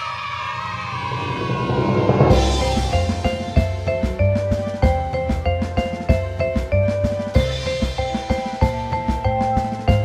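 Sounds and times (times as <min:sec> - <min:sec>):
high cartoon voices cheering: 0:00.0 - 0:03.6
cartoon background music: 0:02.3 - 0:10.0.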